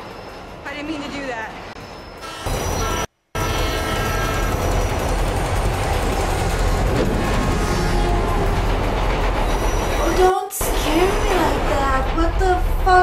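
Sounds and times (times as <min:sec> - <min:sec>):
vehicle horn blaring: 0:02.2 - 0:04.8.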